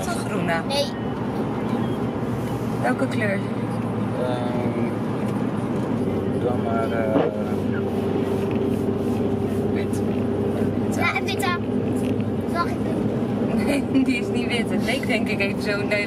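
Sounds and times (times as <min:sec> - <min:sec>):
car road and engine drone: 0:00.0 - 0:16.0.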